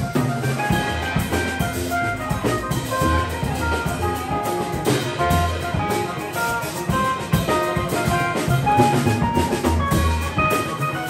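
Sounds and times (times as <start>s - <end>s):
drum kit: 0.0s - 11.0s
keyboard solo: 0.0s - 11.0s
upright bass: 0.0s - 11.0s.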